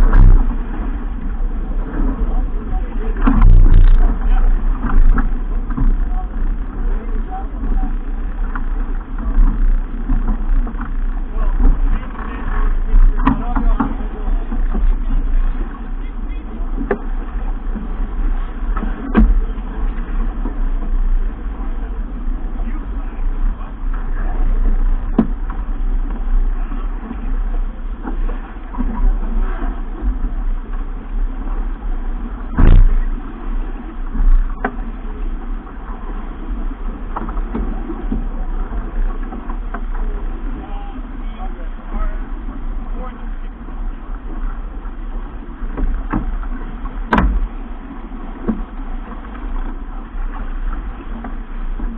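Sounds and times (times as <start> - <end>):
water rushing along hull: 0.0 - 51.9
wind buffeting microphone: 0.0 - 51.9.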